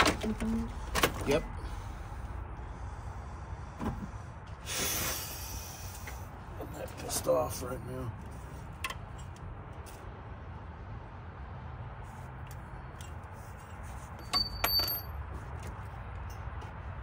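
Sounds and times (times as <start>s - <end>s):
metal parts clinking: 14.2s - 15.2s.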